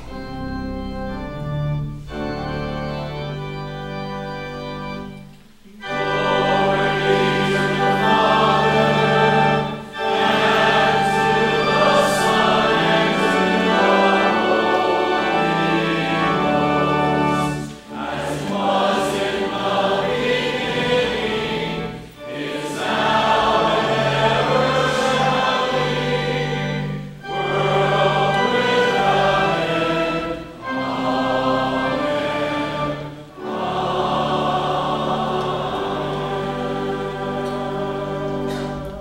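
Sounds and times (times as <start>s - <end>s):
pipe organ: 0.0s - 39.0s
choir singing a hymn: 5.8s - 39.0s.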